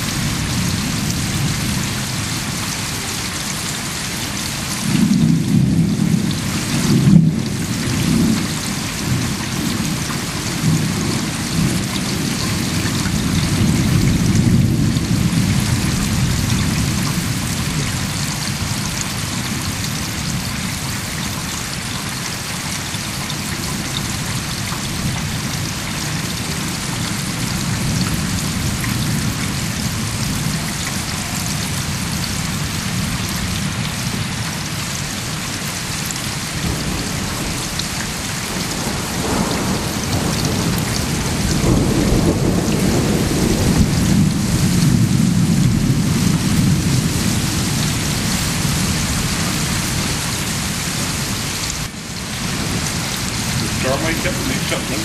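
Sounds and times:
deep rumble of thunder: 0.0 - 2.8, 4.6 - 21.0, 36.6 - 55.0
steady rain falling: 0.0 - 55.0.

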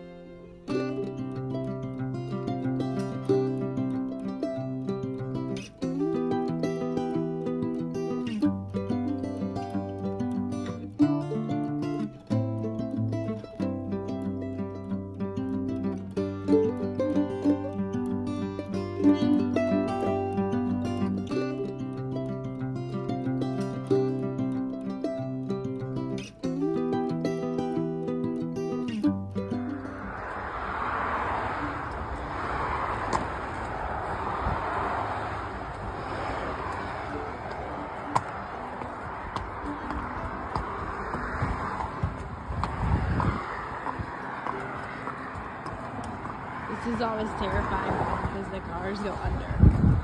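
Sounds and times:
plucked-string acoustic music: 0.0 - 34.6, 35.3 - 50.0
car traffic rushing past: 29.2 - 50.0.

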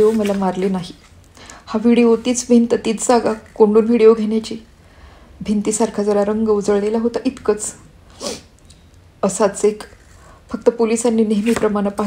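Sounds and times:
woman speaking: 0.0 - 4.7, 5.4 - 7.9, 9.2 - 12.0.

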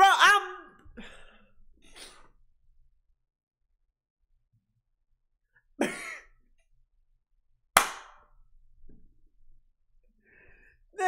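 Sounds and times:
sharp hand clap: 7.8 - 8.3.

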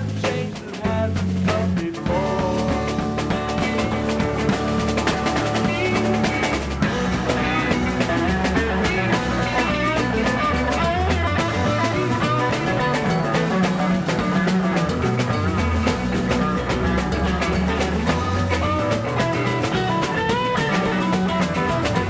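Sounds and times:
bass guitar: 0.0 - 22.0
busy drum kit: 0.0 - 22.0
electric guitar lines: 1.8 - 22.0.

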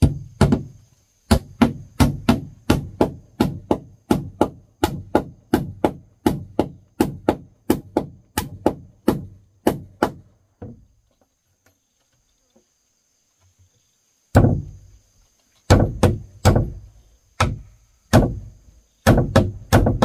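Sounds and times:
hammer striking nail into wood: 1.3 - 10.8, 15.7 - 16.8, 17.4 - 20.0.

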